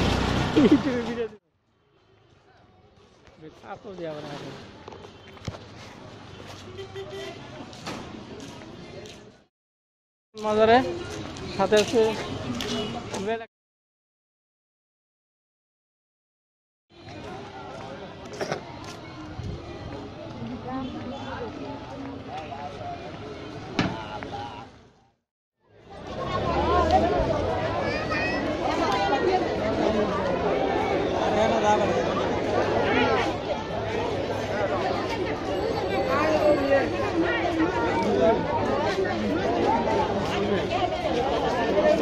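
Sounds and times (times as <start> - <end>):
faint street noise: 0.0 - 9.5, 10.4 - 13.5, 16.9 - 42.0
people talking: 25.9 - 42.0.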